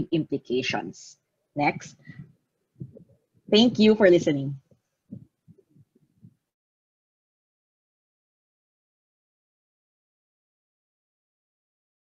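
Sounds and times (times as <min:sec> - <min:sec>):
faint low thumps: 0:01.8 - 0:03.1.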